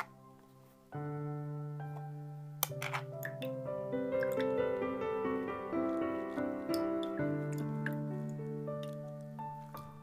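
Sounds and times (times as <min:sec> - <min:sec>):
sustained keyboard music: 0:00.0 - 0:10.0.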